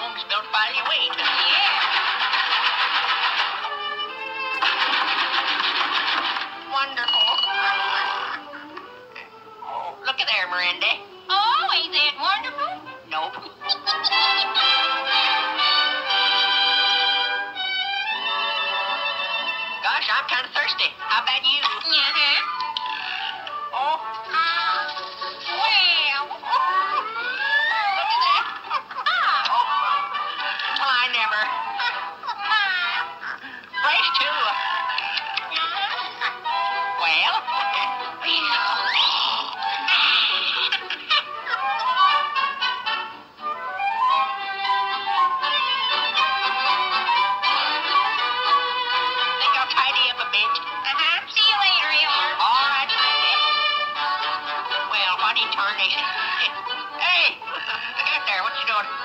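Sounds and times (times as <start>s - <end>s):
cartoon music with whistle slides: 4.4s - 8.5s, 13.4s - 19.8s, 24.1s - 30.8s, 34.6s - 49.4s
rapid mechanical clatter: 4.6s - 6.6s
giggling: 7.6s - 9.3s, 26.4s - 36.9s, 38.9s - 43.1s, 57.2s - 59.0s.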